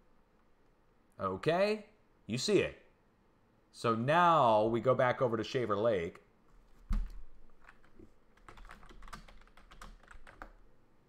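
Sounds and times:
typing on computer keyboard: 6.9s - 10.6s.

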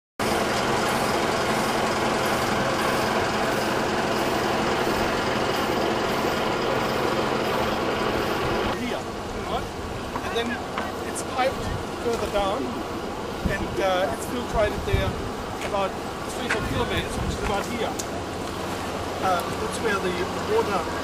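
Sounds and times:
coach engine humming and rumbling: 0.2s - 21.0s
voices: 3.6s - 21.0s.

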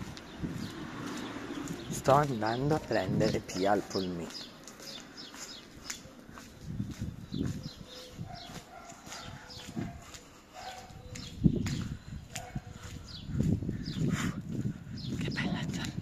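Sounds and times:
birds chirping: 0.0s - 16.0s
footsteps on asphalt: 0.0s - 16.0s.

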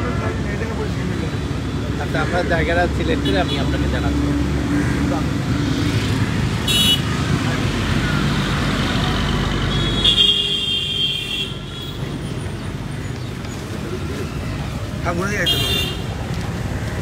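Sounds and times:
road traffic: 0.0s - 17.0s.

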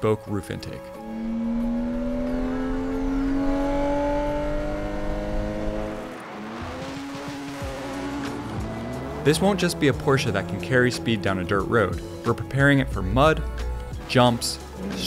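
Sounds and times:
car engine accelerating: 0.8s - 15.0s.

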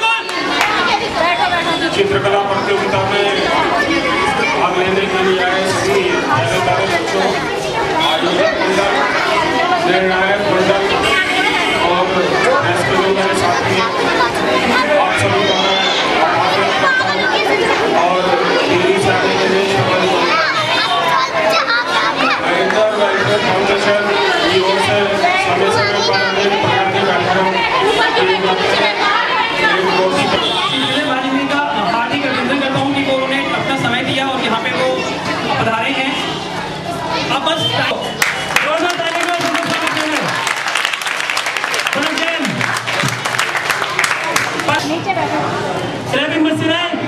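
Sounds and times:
crowd chatter: 0.0s - 47.0s
man speaking into a microphone: 1.8s - 3.7s, 4.5s - 9.1s, 9.8s - 20.6s, 22.4s - 28.8s, 29.6s - 36.3s, 37.3s - 40.4s, 41.9s - 42.6s, 46.1s - 47.0s.

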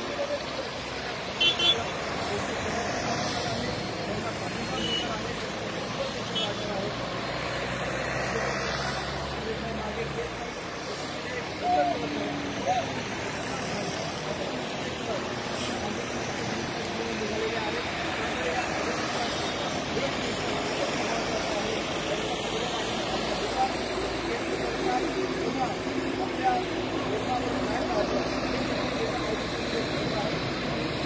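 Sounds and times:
cars driving past: 0.0s - 31.0s.

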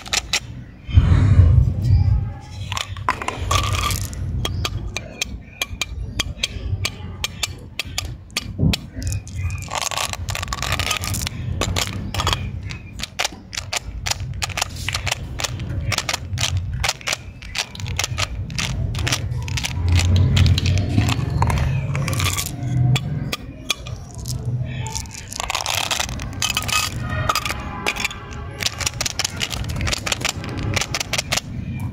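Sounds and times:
jelly beans clicking on plastic: 0.0s - 0.7s, 2.6s - 31.9s.

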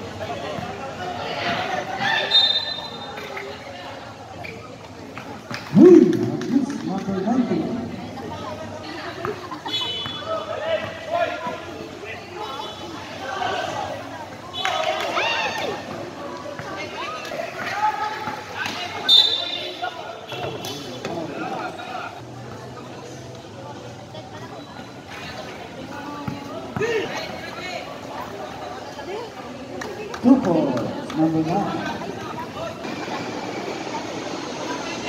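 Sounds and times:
people calling out and chattering: 0.0s - 35.0s.

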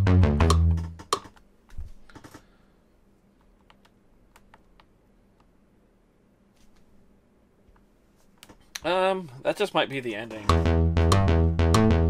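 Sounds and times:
synth pattern with bass: 0.0s - 1.0s, 10.5s - 12.0s.

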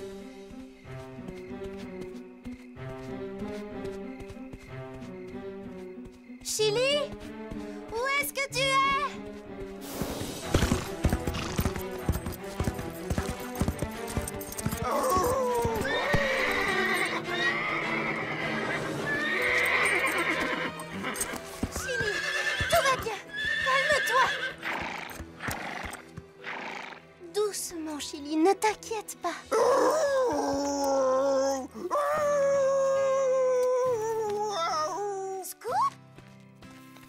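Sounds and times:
hoofbeats: 0.0s - 27.1s
background music: 0.0s - 37.0s
horse whinnying: 14.8s - 27.1s.

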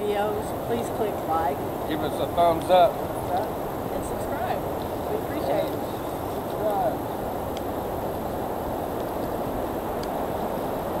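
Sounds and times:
faint clicks: 7.5s - 8.2s, 8.9s - 10.8s.

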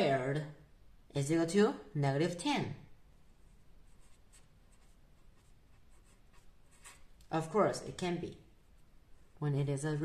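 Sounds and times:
marker pen scratching on paper: 3.4s - 7.1s.

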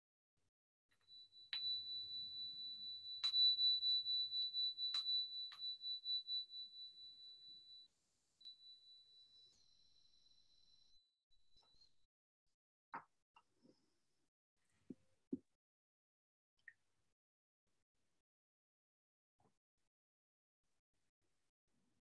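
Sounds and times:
meditation bell ringing: 1.0s - 7.9s.

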